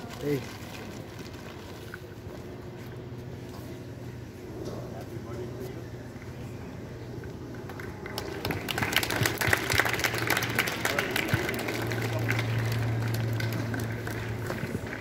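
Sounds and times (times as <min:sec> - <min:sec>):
steady low hum: 0:00.0 - 0:15.0
children clapping: 0:07.6 - 0:15.0.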